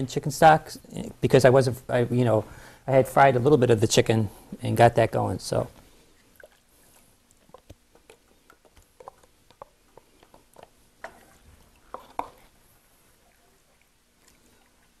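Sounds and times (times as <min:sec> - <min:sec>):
wooden spoon scraping sauce: 0:08.2 - 0:12.6.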